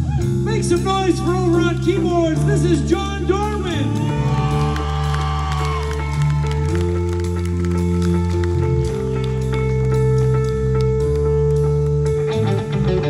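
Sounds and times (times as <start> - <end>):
steady bass line: 0.0 - 13.0
sustained keyboard chords: 0.0 - 13.0
man's voice: 0.4 - 4.6.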